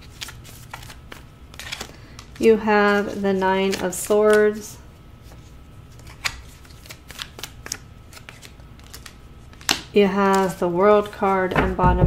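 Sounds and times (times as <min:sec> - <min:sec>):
cards clicking and sliding: 0:00.1 - 0:04.6, 0:05.2 - 0:11.2.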